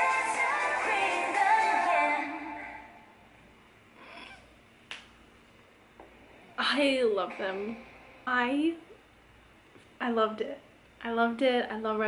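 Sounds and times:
finger snap: 4.8 - 5.2.

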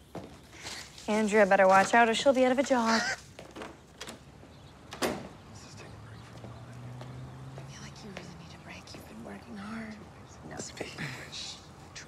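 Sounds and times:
whispered voices talking: 5.5 - 7.0.

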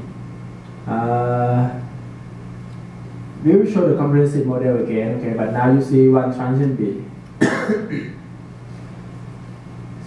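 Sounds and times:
man coughing: 7.4 - 8.2.

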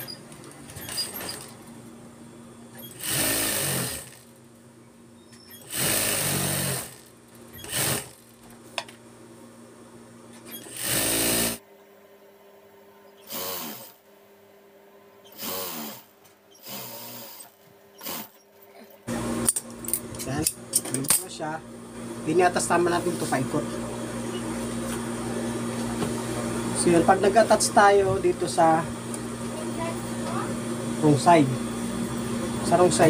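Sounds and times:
motor humming: 2.7 - 4.4, 15.2 - 18.4
sewing machine stitching: 2.8 - 4.2, 5.5 - 8.2, 10.5 - 11.6, 13.2 - 14.0, 15.3 - 18.4.

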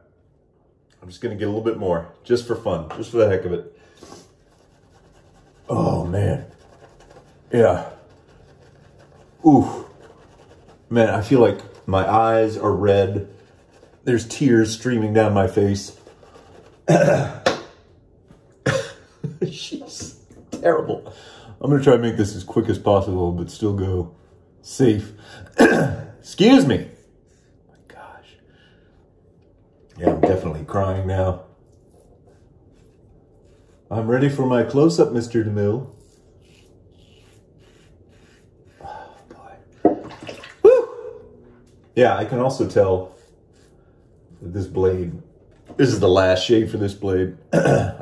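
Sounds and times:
man coughing: 16.9 - 17.5, 18.6 - 19.4, 25.5 - 26.2, 47.5 - 48.0
man vocal ooh: 40.6 - 41.2.

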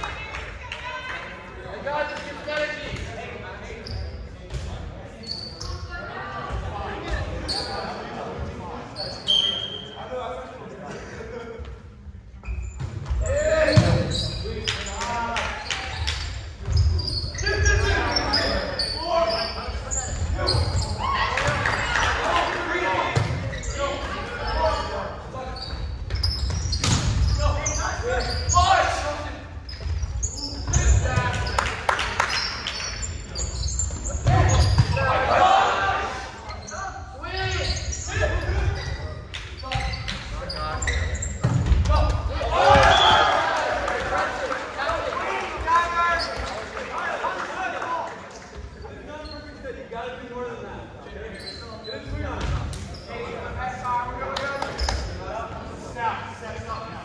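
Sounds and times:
players shouting: 34.2 - 36.5, 41.8 - 48.1.

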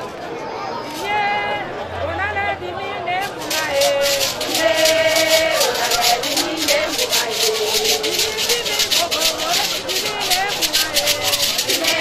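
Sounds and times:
gourd rattles shaken: 3.1 - 12.0.

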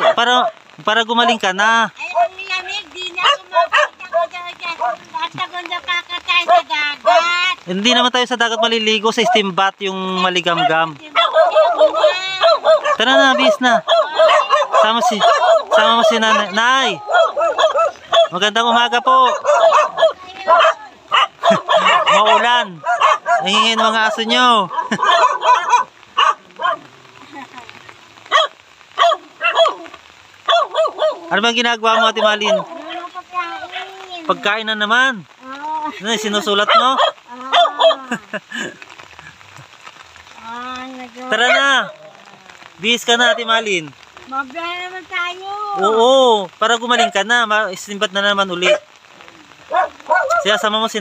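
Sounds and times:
dog yipping and barking: 0.0 - 0.6, 2.0 - 2.5, 3.2 - 5.1, 6.4 - 7.3, 10.2 - 26.9, 28.2 - 33.8, 36.6 - 38.2, 41.3 - 42.0, 47.0 - 47.2, 48.6 - 49.0, 49.6 - 50.7
woman speaking: 2.0 - 7.7, 10.9 - 12.8, 13.9 - 14.9, 19.8 - 22.4, 32.7 - 34.4, 35.4 - 36.4, 37.3 - 38.3, 40.4 - 41.4, 44.2 - 45.9.

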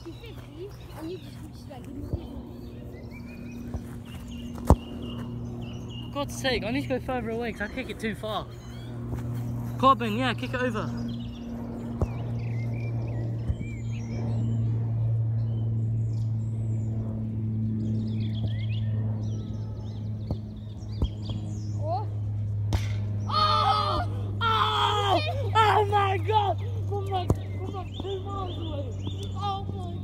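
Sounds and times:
steady low hum: 0.0 - 30.0
distant shouting voices: 23.2 - 30.0.

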